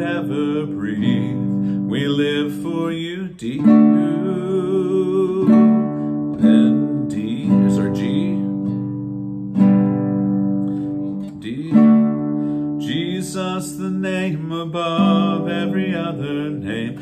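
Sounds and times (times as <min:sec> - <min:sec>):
man singing: 0:00.0 - 0:08.9, 0:11.1 - 0:17.0
classical guitar strumming chords: 0:00.0 - 0:17.0.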